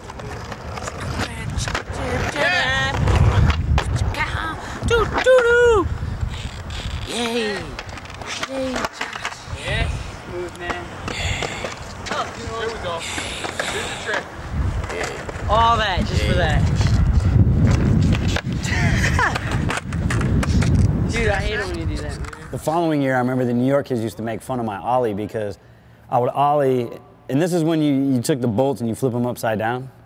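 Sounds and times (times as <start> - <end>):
skateboard wheels rolling on asphalt: 0.0 - 22.7
person calling out: 4.8 - 5.9.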